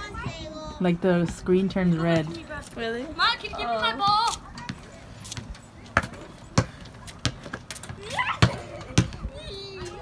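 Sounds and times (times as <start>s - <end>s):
basketball bouncing on concrete: 0.2s - 3.0s, 3.6s - 10.0s.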